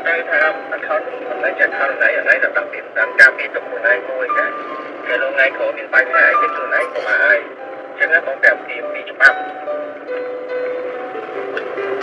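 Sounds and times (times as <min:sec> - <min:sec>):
music: 0:00.0 - 0:12.0
person talking: 0:06.4 - 0:07.5.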